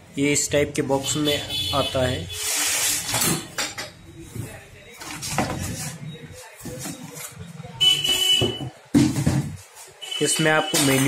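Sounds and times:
parts knocking and clattering: 8.0s - 9.8s, 10.6s - 11.0s.

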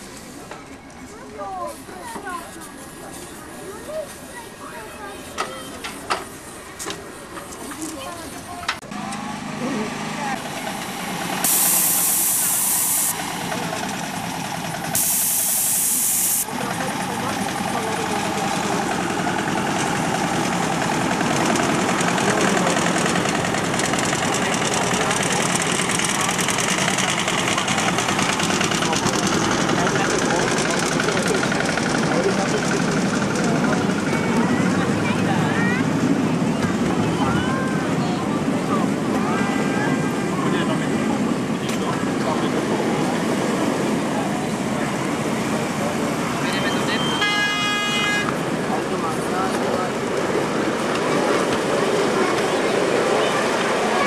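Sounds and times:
miniature train running: 0.0s - 54.0s
passengers' voices: 0.0s - 54.0s
loud hiss bursts: 10.5s - 13.5s, 14.4s - 16.6s.

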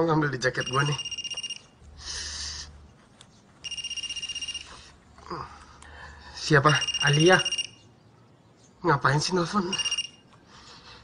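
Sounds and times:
electronic phone ringing: 0.5s - 1.8s, 3.6s - 4.9s, 6.6s - 7.9s, 9.6s - 10.3s.

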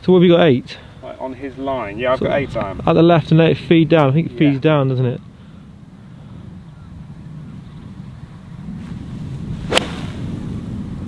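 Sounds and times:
wind buffeting microphone: 0.0s - 11.0s
golf club striking ball: 9.6s - 10.4s.

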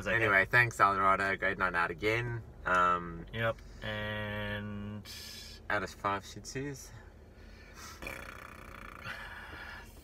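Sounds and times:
breath: 9.0s - 10.0s.

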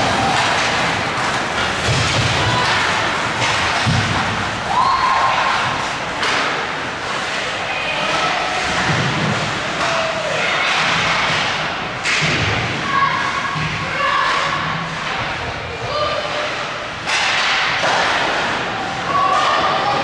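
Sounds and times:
people shouting: 0.0s - 3.6s, 4.6s - 5.8s
hockey sticks and puck knocking: 0.0s - 12.8s, 16.2s - 20.0s
arena crowd din: 0.0s - 20.0s.

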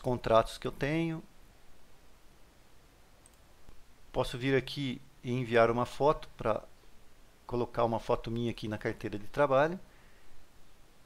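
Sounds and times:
faint computer mouse clicks: 3.2s - 3.8s.

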